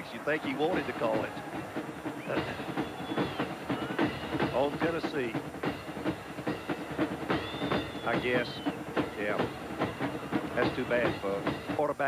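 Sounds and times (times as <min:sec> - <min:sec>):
stadium crowd noise: 0:00.0 - 0:12.0
high whistle tone: 0:02.1 - 0:05.0, 0:07.3 - 0:09.4.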